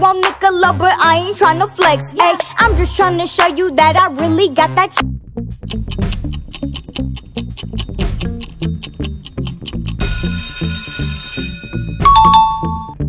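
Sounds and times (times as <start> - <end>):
pulsing bass music loop: 5.0 - 10.2
clock ticking fast: 5.6 - 10.6
alarm-clock bell ringing: 9.0 - 12.9.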